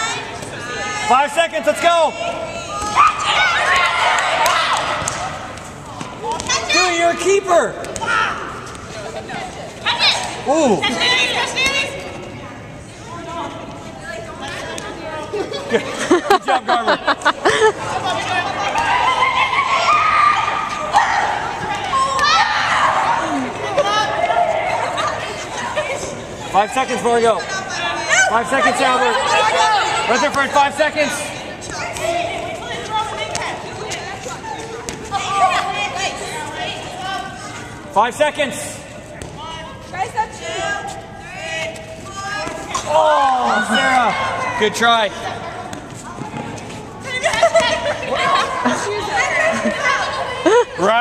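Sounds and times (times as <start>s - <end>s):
players calling out and chattering: 0.0s - 51.0s.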